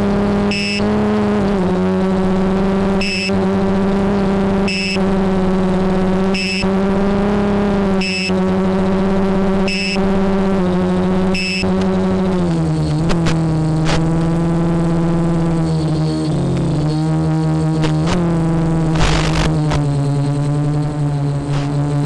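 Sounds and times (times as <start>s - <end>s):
drone motors humming: 0.0s - 22.0s
high beep: 0.5s - 0.9s, 3.0s - 3.4s, 4.7s - 5.1s, 6.3s - 6.7s, 8.0s - 8.4s, 9.6s - 10.0s, 11.3s - 11.8s
sharp clicks: 18.9s - 19.9s.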